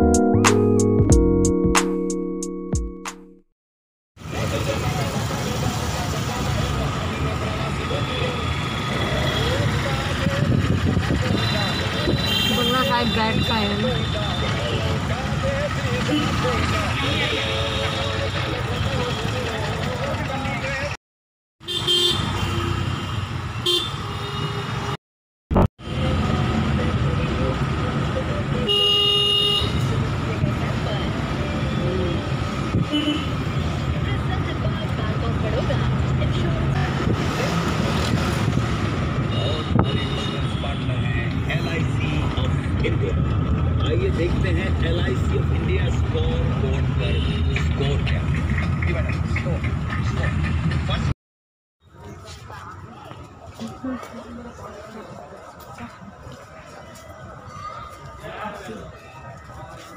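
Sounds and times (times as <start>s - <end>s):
road traffic: 4.2s - 21.0s, 21.6s - 51.2s, 51.8s - 59.9s
vehicle rumble: 4.2s - 21.0s, 25.6s - 28.8s, 29.6s - 51.2s
vehicle horn honking: 11.3s - 14.8s, 21.6s - 23.0s, 23.6s - 25.0s, 28.7s - 29.9s, 32.8s - 33.4s, 39.3s - 41.0s.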